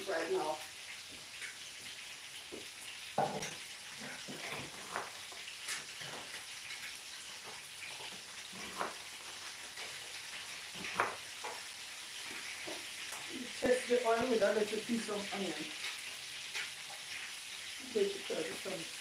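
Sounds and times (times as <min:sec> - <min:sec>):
fish sizzling in hot oil: 0:00.0 - 0:19.0.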